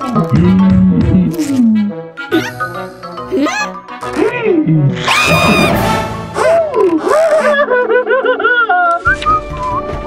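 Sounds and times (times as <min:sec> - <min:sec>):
background music: 0:00.0 - 0:10.0
cartoon voice high shriek: 0:05.1 - 0:05.8.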